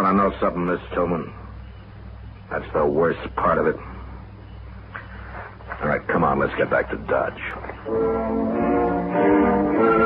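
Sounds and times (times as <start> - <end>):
steady low hum: 0.0 - 10.0
man speaking: 2.5 - 4.0, 5.7 - 7.7.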